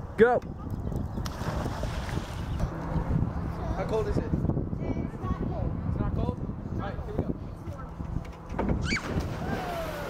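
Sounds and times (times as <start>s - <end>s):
churning rushing water: 8.8s - 10.0s.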